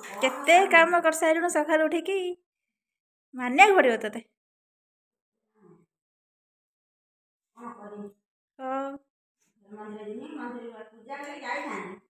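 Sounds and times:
woman speaking: 0:00.0 - 0:02.4, 0:03.4 - 0:04.3, 0:07.6 - 0:09.0, 0:09.7 - 0:12.0.

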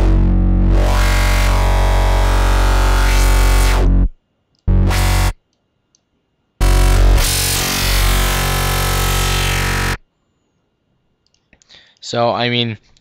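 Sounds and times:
synthesizer growl bass note: 0:00.0 - 0:05.4, 0:06.6 - 0:10.0.

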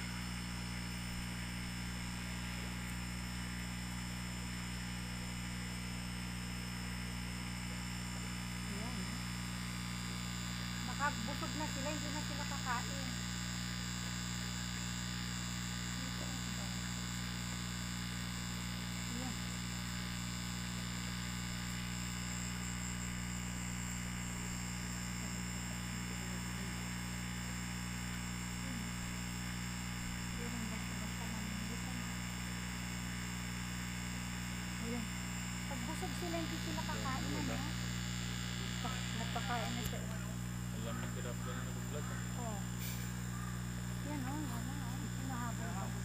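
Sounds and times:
thin high whine: 0:00.0 - 0:46.0
faint voices: 0:38.6 - 0:42.6.

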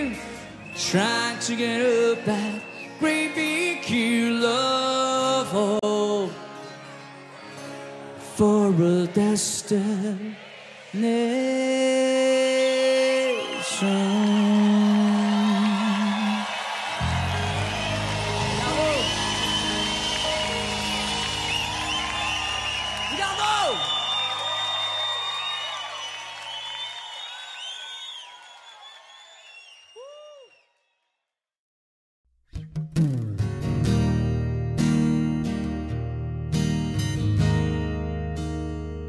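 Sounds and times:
live acoustic rock band: 0:00.0 - 0:10.8, 0:12.8 - 0:24.4, 0:32.6 - 0:39.0
audience cheering and whooping: 0:12.4 - 0:30.7.

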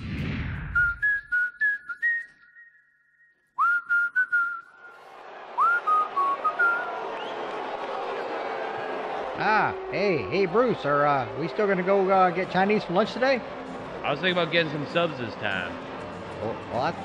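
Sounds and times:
whistled tune: 0:00.6 - 0:05.0, 0:05.6 - 0:07.5.

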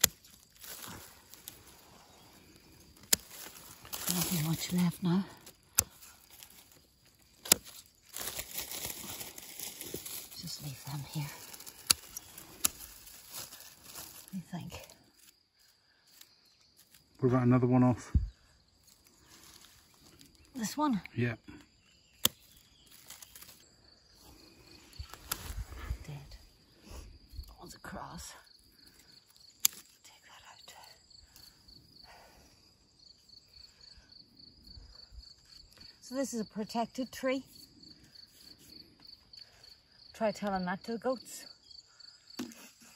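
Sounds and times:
leaves and dry grass rustling: 0:00.0 - 0:40.2
cricket chirping: 0:00.0 - 0:42.9.

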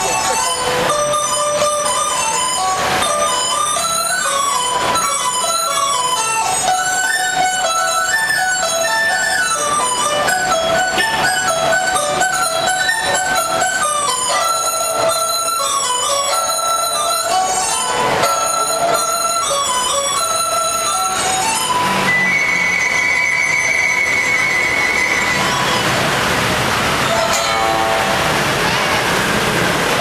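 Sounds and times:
bamboo flute and pipa melody: 0:00.0 - 0:30.0
rushing noise: 0:00.0 - 0:30.0.

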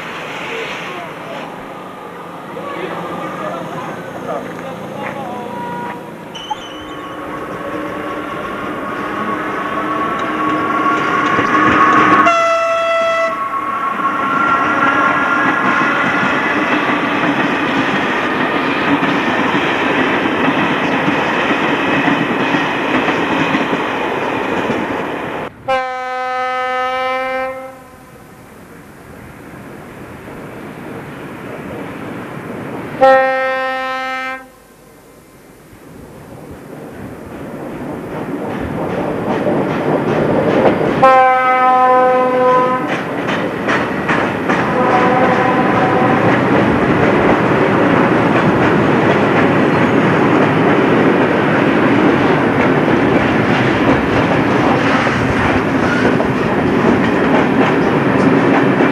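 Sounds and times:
electric locomotive passing: 0:00.0 - 0:58.9
rail cars rolling past: 0:00.0 - 0:58.9
train horn blasts: 0:05.4 - 0:14.5, 0:25.7 - 0:28.2, 0:33.0 - 0:34.6, 0:41.0 - 0:42.9, 0:44.6 - 0:46.3.

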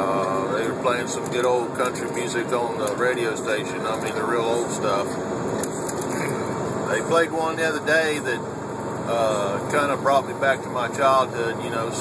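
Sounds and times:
truck road and engine noise: 0:00.0 - 0:12.0.

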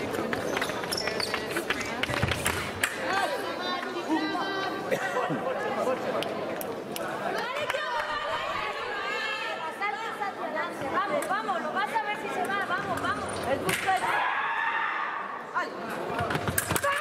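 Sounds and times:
chatter of voices echoing: 0:00.0 - 0:17.0.

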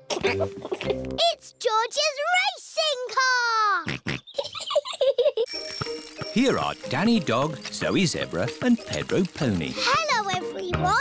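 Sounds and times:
cartoon bicycle bell ringing: 0:05.5 - 0:10.0.

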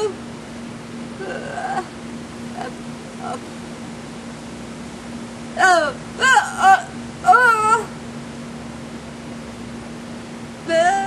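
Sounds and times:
woman's wordless vocal sound: 0:05.6 - 0:08.0, 0:10.7 - 0:11.0.

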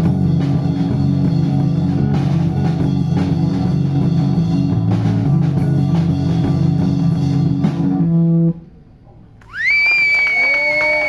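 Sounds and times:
high whistle gliding upward: 0:09.5 - 0:11.0.

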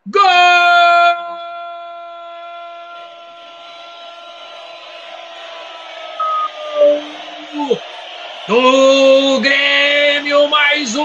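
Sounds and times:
man's drawn-out goal cry: 0:00.1 - 0:03.7.

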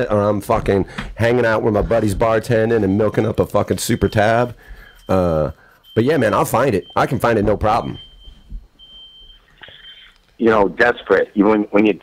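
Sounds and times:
soft low thump: 0:07.4 - 0:08.8.

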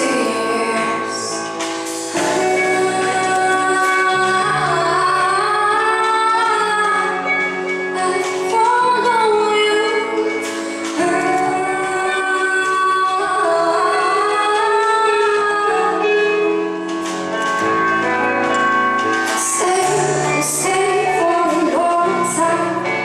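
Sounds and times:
woman singing pop ballad: 0:00.0 - 0:17.1, 0:19.3 - 0:23.0
bass guitar: 0:00.0 - 0:23.0
electric guitar: 0:00.0 - 0:23.0.

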